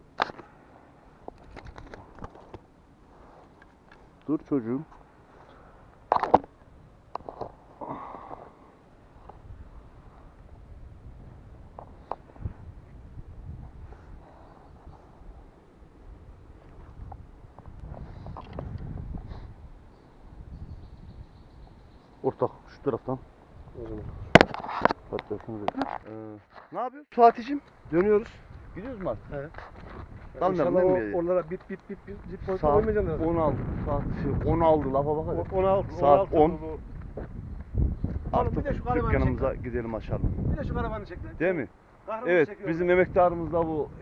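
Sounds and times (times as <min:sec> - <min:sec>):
rustles: 0:00.0 - 0:34.2
handling clicks and crackling: 0:01.3 - 0:02.7.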